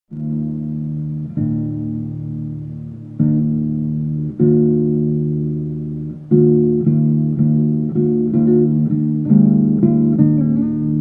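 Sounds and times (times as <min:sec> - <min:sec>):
acoustic guitar chords: 0:00.1 - 0:11.0.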